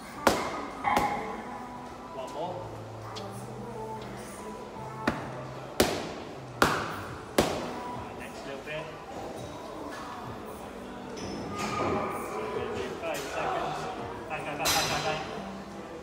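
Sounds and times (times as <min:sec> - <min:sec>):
background music: 0:00.0 - 0:16.0
boxing gloves smacking mitts: 0:05.0 - 0:07.7.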